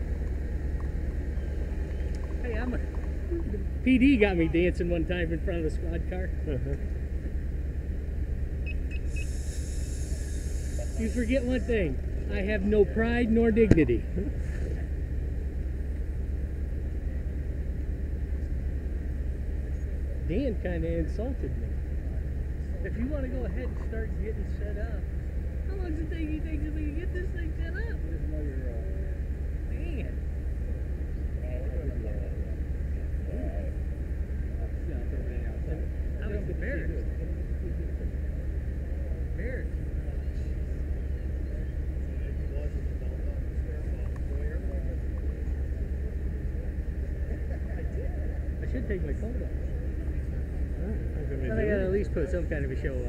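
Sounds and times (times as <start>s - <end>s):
low engine rumble: 0.0s - 53.0s
faint indistinct voices: 9.1s - 53.0s.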